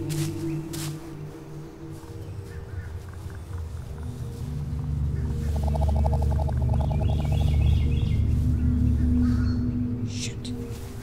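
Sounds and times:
film score drone with held tones: 0:00.0 - 0:11.0
high bird-like chirps: 0:05.1 - 0:08.4.

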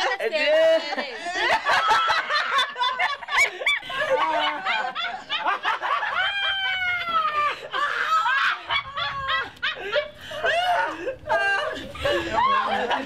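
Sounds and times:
group of people laughing: 0:00.0 - 0:13.0.

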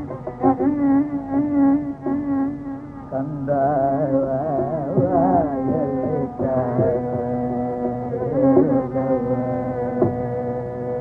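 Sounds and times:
buzzing drone: 0:00.0 - 0:11.0.

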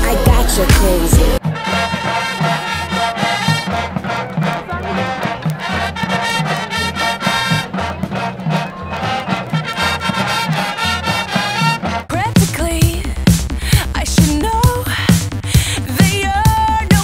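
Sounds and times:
brass-led music with bass line: 0:00.0 - 0:17.0.

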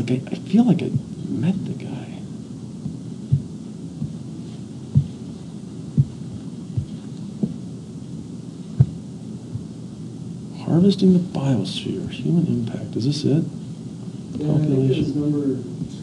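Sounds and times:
soft low thumps: 0:00.6 - 0:01.6, 0:02.7 - 0:09.9, 0:15.8 - 0:16.0.

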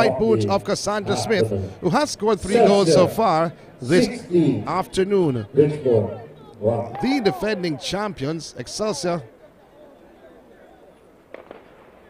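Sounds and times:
distant voices: 0:00.0 - 0:12.0.

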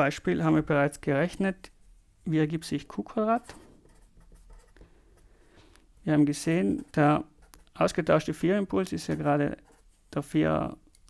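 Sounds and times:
marker writing on paper: 0:03.4 - 0:04.8.

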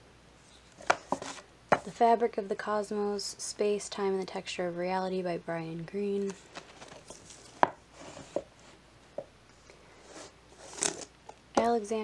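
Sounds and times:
rustling of pages: 0:00.4 - 0:01.9, 0:06.1 - 0:08.8, 0:10.0 - 0:11.4
books knocking on wooden shelf: 0:07.6 - 0:08.5.

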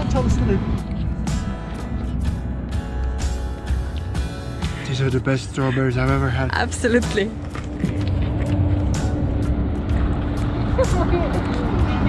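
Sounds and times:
background music: 0:00.0 - 0:12.0
vehicle engine rumbling: 0:00.0 - 0:12.0.

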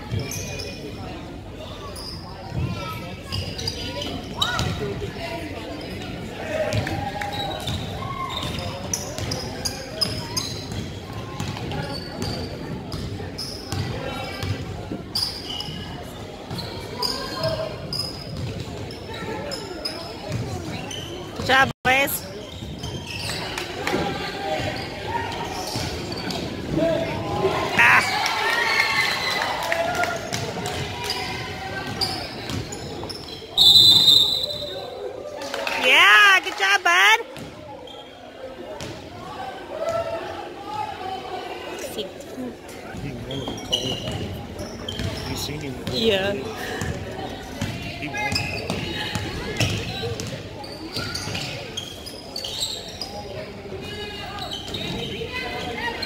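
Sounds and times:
murmur of spectators: 0:00.0 - 0:56.0
referee's whistle blast: 0:33.6 - 0:34.9.

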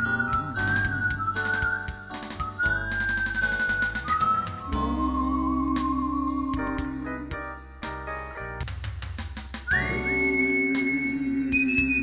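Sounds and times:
drums ticking: 0:00.0 - 0:05.2
person whistling a melody: 0:00.0 - 0:07.2, 0:09.7 - 0:12.0
instrumental backing track: 0:00.0 - 0:12.0.

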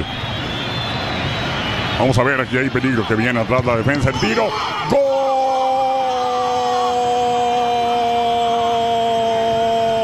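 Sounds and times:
commentator's long goal shout: 0:04.1 - 0:10.0.

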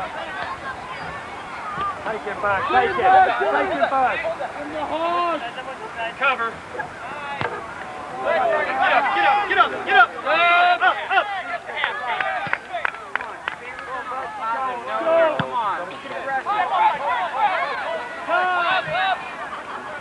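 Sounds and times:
voices shouting and calling: 0:00.0 - 0:20.0.

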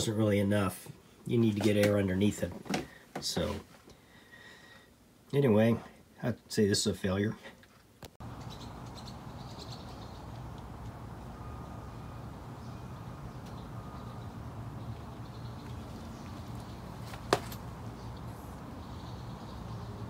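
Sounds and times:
low outdoor rumble: 0:08.2 - 0:20.0
faint high chirps: 0:11.2 - 0:16.6.

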